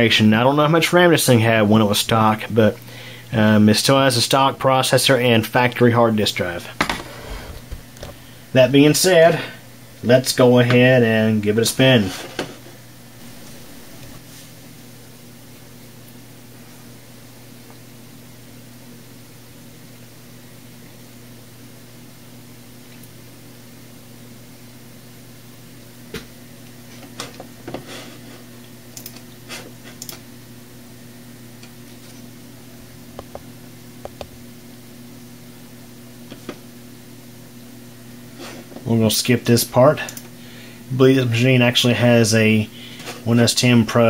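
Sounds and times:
desktop computer humming: 0.0s - 44.0s.

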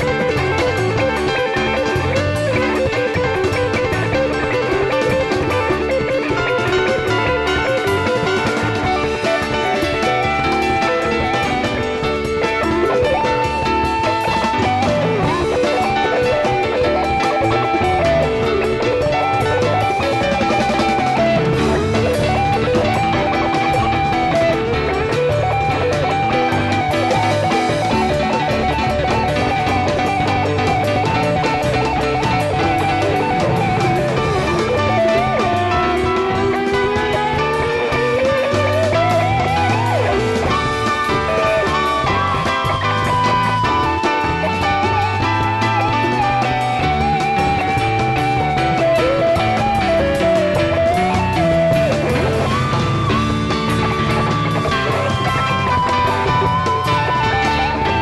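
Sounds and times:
electric guitar lead line: 0.0s - 58.0s
live rock band playing: 0.0s - 58.0s
rising pitch glide: 0.0s - 58.0s.

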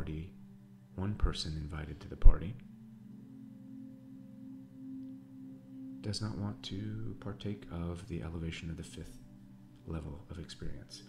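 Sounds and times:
soft drone music: 0.0s - 11.0s.

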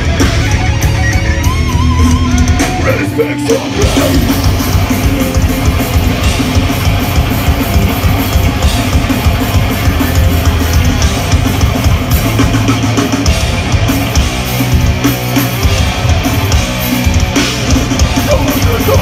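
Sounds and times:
bass guitar: 0.0s - 19.0s
distorted electric guitars: 0.0s - 19.0s
hard-hit drum kit: 0.0s - 19.0s.

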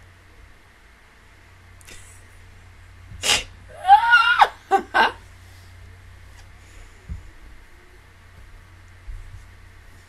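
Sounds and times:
woman squealing: 3.7s - 5.2s.

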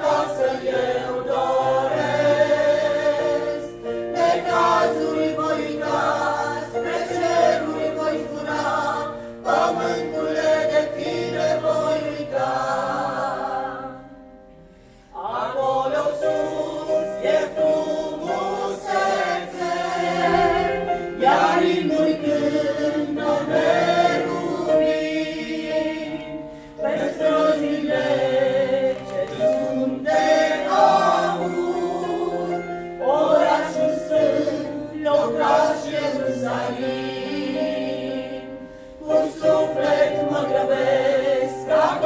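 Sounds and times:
mixed choir singing a hymn: 0.0s - 42.0s.

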